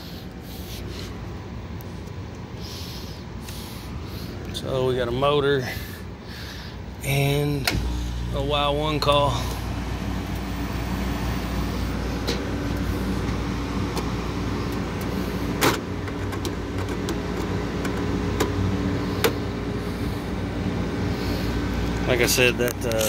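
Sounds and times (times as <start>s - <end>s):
air conditioner unit humming: 0.0s - 23.0s.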